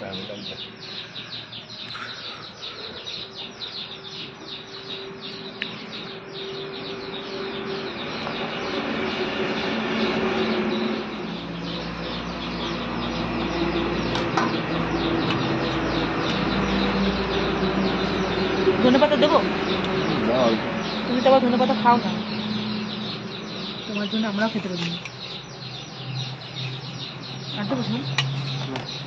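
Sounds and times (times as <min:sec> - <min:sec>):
birds chirping: 0:00.0 - 0:29.0.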